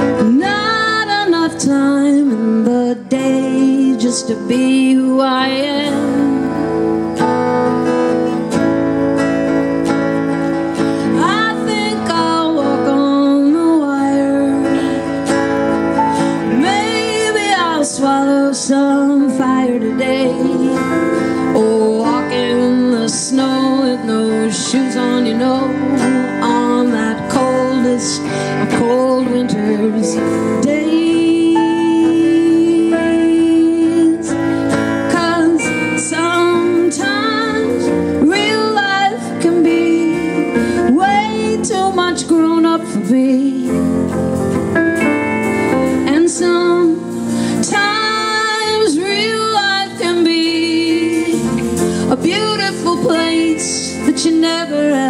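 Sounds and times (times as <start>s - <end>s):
live band playing: 0.0s - 55.0s.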